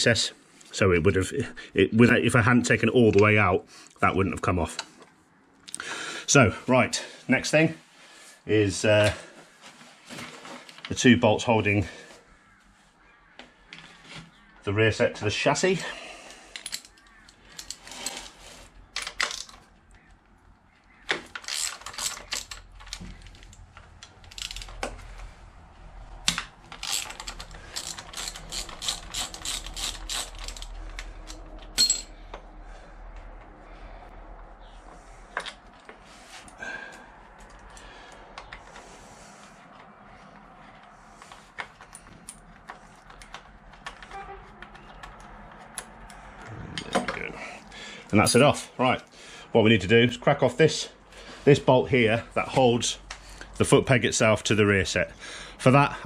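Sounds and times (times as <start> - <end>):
socket ratchet clicking: 26.8 - 31.4.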